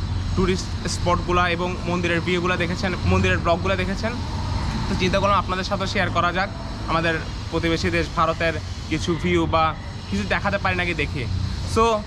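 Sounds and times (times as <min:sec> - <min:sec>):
road traffic rumble: 0:00.0 - 0:12.0
man talking: 0:00.4 - 0:12.0.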